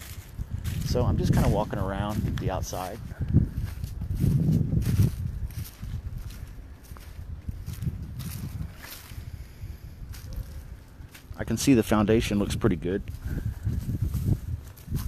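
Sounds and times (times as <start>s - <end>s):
footsteps in mud and dry grass: 0.0s - 15.0s
low microphone rumble: 0.0s - 15.0s.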